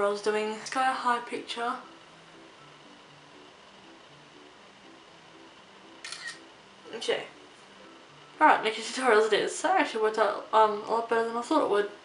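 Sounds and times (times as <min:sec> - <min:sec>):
faint piano music: 0:00.0 - 0:12.0
camera shutter click: 0:06.0 - 0:06.4.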